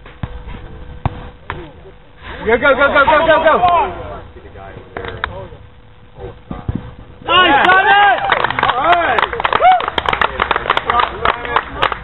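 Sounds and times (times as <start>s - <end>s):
soccer ball being kicked: 0.0s - 1.7s, 6.4s - 7.3s
faint steady hum: 0.0s - 12.0s.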